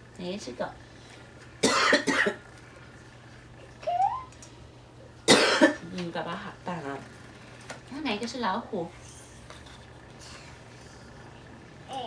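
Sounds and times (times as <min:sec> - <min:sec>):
person coughing: 0:01.6 - 0:02.4, 0:05.3 - 0:05.8.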